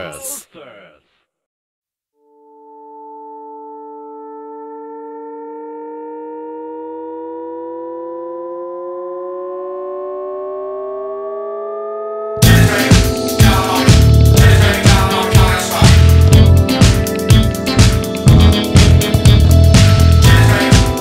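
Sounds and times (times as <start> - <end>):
synth riser chord: 2.3 - 21.0.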